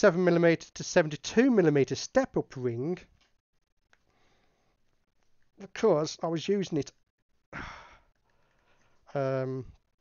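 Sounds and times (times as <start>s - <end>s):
person sighing: 7.5s - 8.1s.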